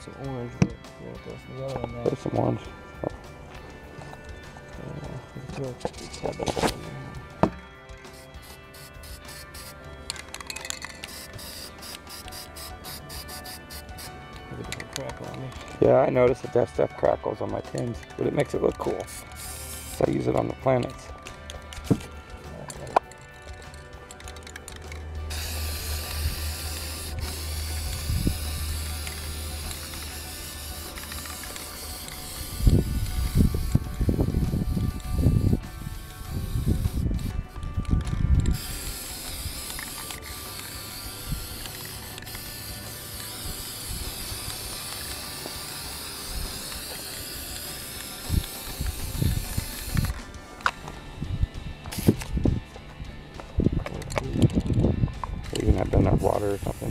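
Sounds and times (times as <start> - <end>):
spray paint can hissing: 7.4 - 14.8, 18.8 - 20.5, 22.9 - 50.8, 51.9 - 52.3, 56.1 - 56.9.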